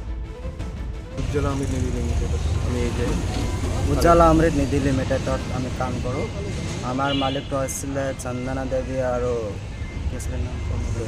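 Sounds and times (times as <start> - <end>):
people talking: 1.2 - 11.0
street traffic rumble: 1.2 - 11.0.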